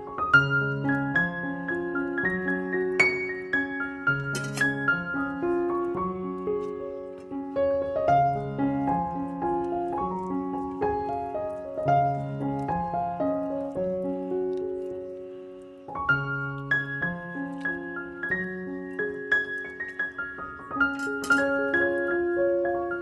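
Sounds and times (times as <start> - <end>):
calm piano melody: 0.0 - 23.0.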